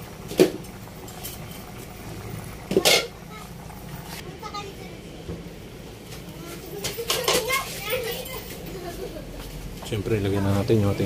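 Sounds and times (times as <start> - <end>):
stew bubbling in a pot: 0.0 - 4.2.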